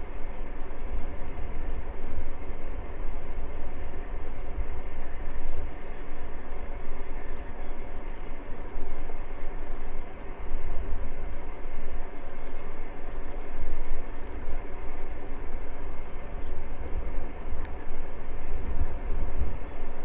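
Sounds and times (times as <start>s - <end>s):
tyres rolling on asphalt: 0.0s - 20.0s
wind buffeting microphone: 0.0s - 20.0s.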